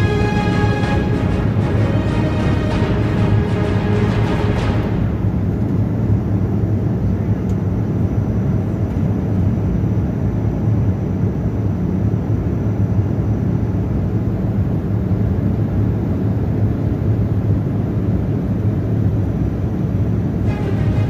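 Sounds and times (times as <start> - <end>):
jet cabin engine roar: 0.0 - 21.0.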